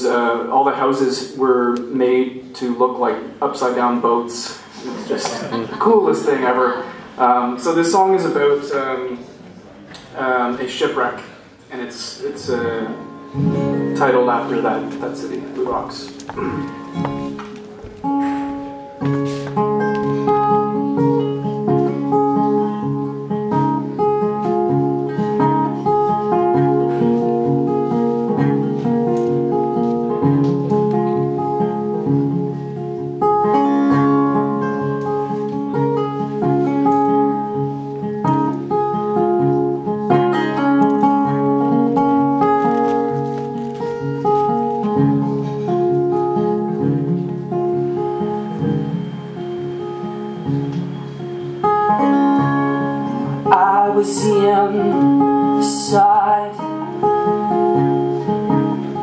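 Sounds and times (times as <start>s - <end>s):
solo acoustic guitar: 0.0s - 59.0s.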